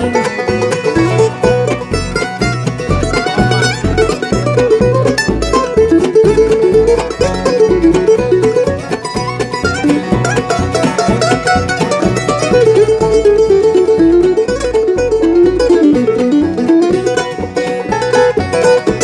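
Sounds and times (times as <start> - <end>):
bluegrass band playing: 0.0 - 19.0.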